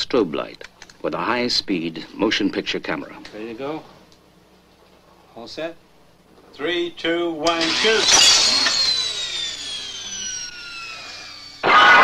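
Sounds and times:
camera motor whining down: 0:07.5 - 0:12.0.

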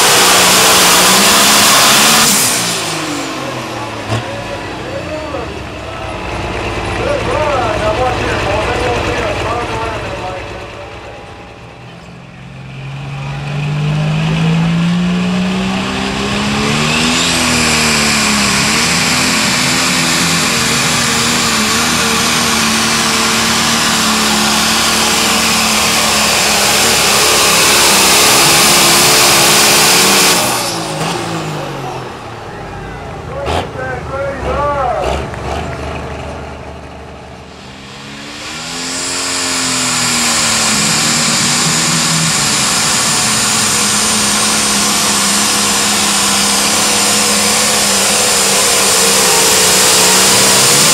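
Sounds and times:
high engine whine: 0:00.0 - 0:50.9
pulling tractor engine at full throttle: 0:00.0 - 0:50.9.

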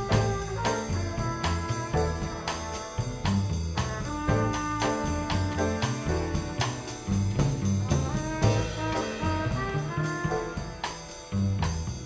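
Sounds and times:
trumpet melody: 0:00.0 - 0:11.4
drums and cymbal hits: 0:00.0 - 0:12.0
walking upright bass: 0:00.0 - 0:12.0.

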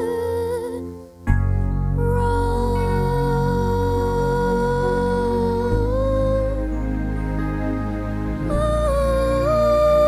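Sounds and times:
girl singing a long note: 0:00.0 - 0:01.3, 0:01.9 - 0:07.0, 0:08.4 - 0:10.0
sustained keyboard chords: 0:00.0 - 0:10.0.

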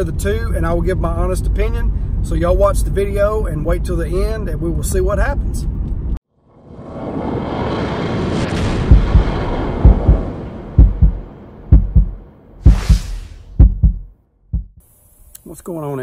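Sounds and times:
rushing whoosh: 0:06.5 - 0:14.0
deep heartbeat thumps: 0:08.8 - 0:14.8
short hissing swish: 0:12.6 - 0:13.6.

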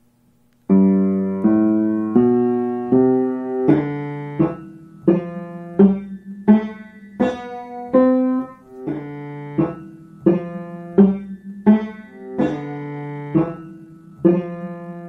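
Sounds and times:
upright piano chords: 0:00.7 - 0:15.0.

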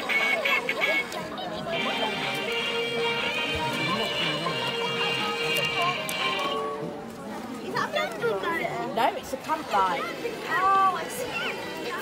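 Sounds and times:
electronic toy melody: 0:00.2 - 0:06.8.

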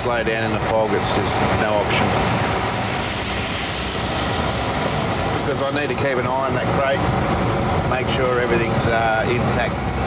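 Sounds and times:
truck driving slowly: 0:00.0 - 0:10.0.

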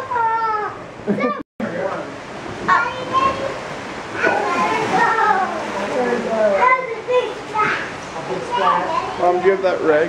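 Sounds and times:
children and adults talking: 0:00.0 - 0:10.0.

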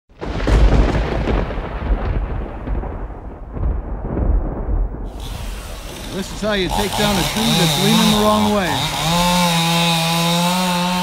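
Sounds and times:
deep rumbling boom: 0:00.2 - 0:08.9
steady outdoor hiss: 0:05.1 - 0:09.2.

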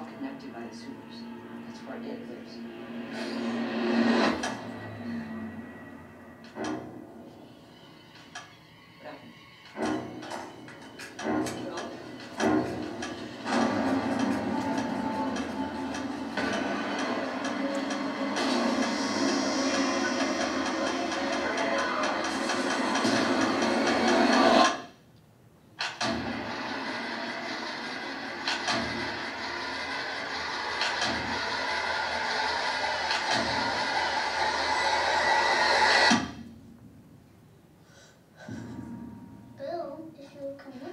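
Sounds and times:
dense build of score and effects: 0:00.0 - 0:07.9, 0:09.8 - 0:24.9, 0:26.0 - 0:37.1
sharp hits: 0:09.7 - 0:25.0, 0:25.8 - 0:37.2.

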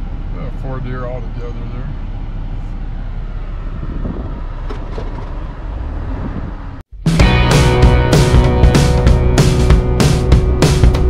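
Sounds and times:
vehicle engine rumble from cab: 0:00.0 - 0:07.0.

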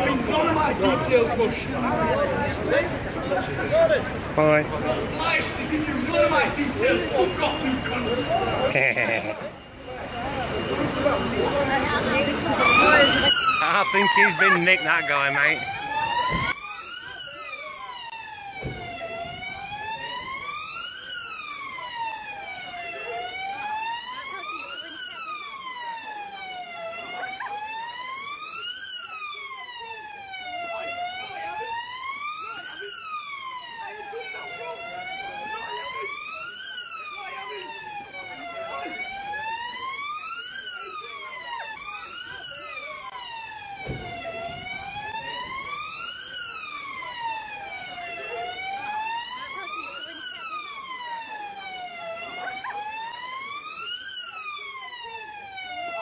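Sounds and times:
emergency vehicle siren wailing: 0:00.0 - 0:56.0.

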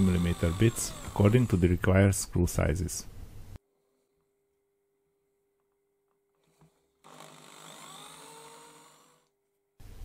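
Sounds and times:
faint electric drill motor: 0:00.0 - 0:01.8, 0:06.4 - 0:09.4.

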